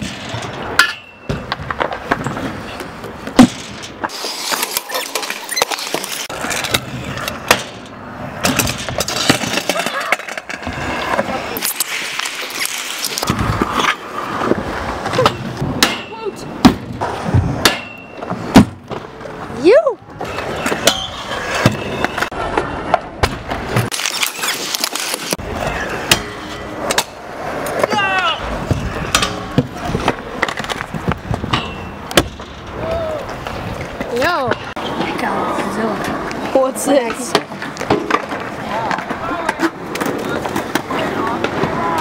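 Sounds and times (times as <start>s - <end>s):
scooter wheels rolling on concrete: 0.0s - 42.0s.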